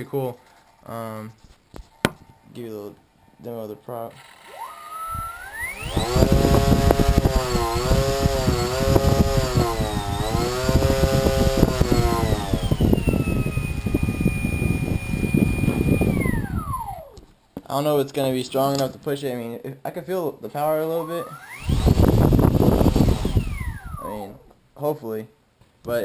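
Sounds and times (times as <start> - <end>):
small electric motor whine: 4.2 - 17.2, 21.0 - 24.4.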